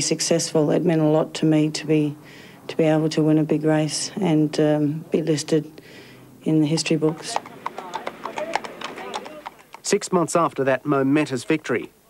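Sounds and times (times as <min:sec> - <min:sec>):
hooves clip-clopping on pavement: 0:06.6 - 0:10.6.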